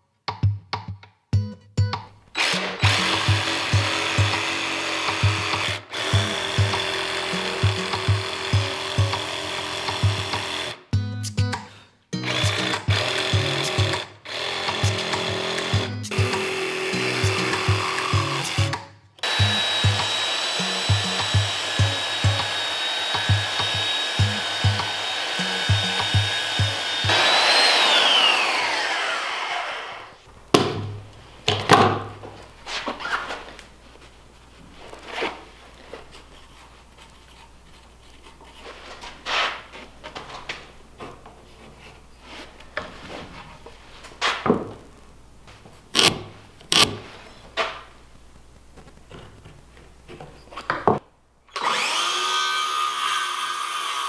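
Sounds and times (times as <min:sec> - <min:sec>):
background music with beat: 0:00.3 - 0:02.2, 0:02.8 - 0:09.3, 0:09.9 - 0:14.1, 0:14.7 - 0:22.6, 0:23.2 - 0:27.2
belt sander whining: 0:02.4 - 0:10.8, 0:12.3 - 0:30.2, 0:51.5 - 0:54.0
jigsaw cutting wood: 0:02.4 - 0:10.8, 0:12.2 - 0:30.2, 0:46.0 - 0:46.9, 0:51.5 - 0:54.0.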